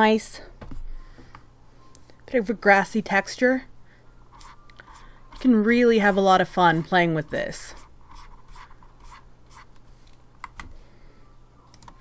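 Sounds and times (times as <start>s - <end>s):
stylus scratching on tablet: 4.3s - 9.8s.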